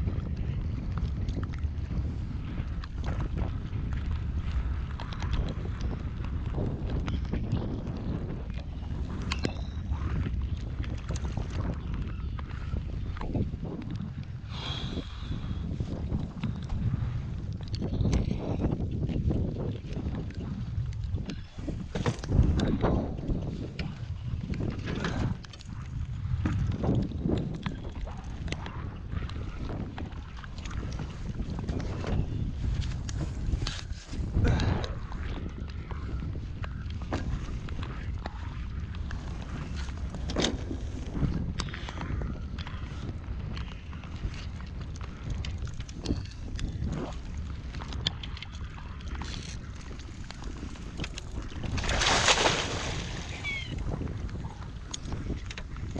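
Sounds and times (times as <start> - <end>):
wind buffeting microphone: 0.0 - 55.9.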